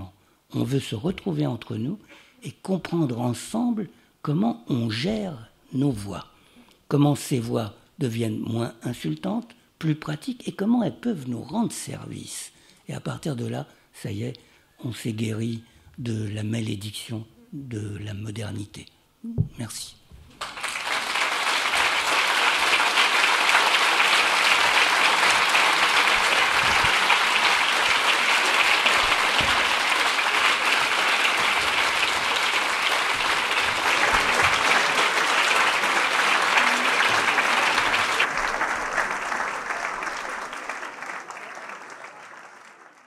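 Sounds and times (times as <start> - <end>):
audience applauding: 20.4 - 43.0.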